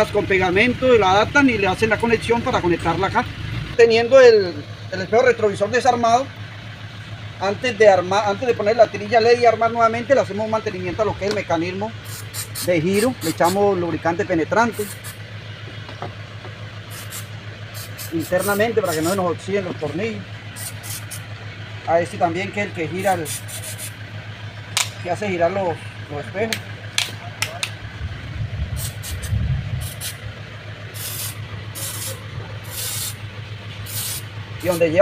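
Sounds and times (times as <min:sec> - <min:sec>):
engine idling: 0:00.0 - 0:35.0
lubricant spray hiss: 0:12.0 - 0:13.6, 0:14.8 - 0:15.2, 0:16.9 - 0:19.2, 0:20.6 - 0:21.2, 0:23.2 - 0:24.0, 0:28.8 - 0:30.2, 0:30.9 - 0:33.2, 0:33.8 - 0:34.8
low rumble: 0:24.0 - 0:34.7.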